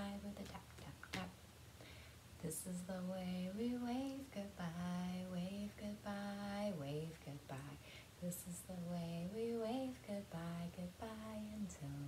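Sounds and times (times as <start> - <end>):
woman singing: 0.0 - 1.4, 2.4 - 12.0.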